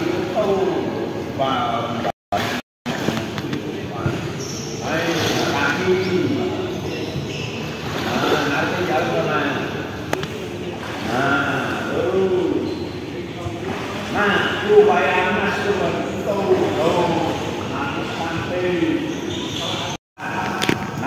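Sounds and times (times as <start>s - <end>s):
people talking and calling: 0.0s - 21.0s.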